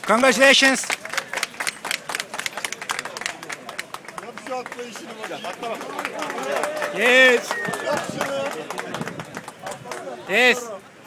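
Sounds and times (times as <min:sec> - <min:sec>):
spectators clapping: 0:00.0 - 0:10.5
crowd voices: 0:00.0 - 0:11.0.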